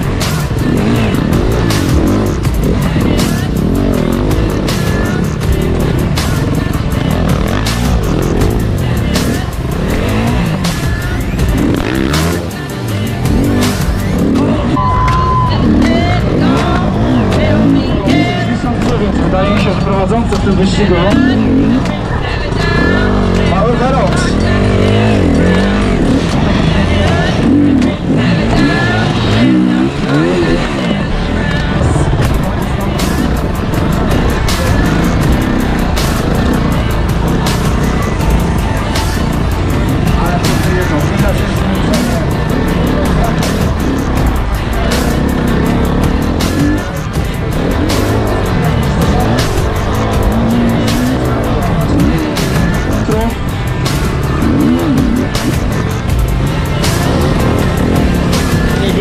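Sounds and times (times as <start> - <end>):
motorcycle engine revving: 0.0 - 59.0.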